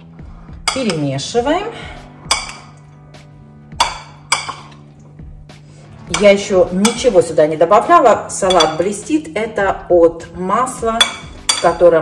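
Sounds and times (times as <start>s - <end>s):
spoon stirring salad: 0.6s - 1.1s, 2.2s - 3.1s, 3.7s - 5.2s, 6.0s - 7.3s, 8.0s - 9.1s
spoon clinking on ceramic bowl: 0.7s - 1.0s, 2.3s - 2.9s, 3.8s - 4.9s, 6.1s - 7.1s, 8.4s - 9.0s, 11.0s - 11.8s.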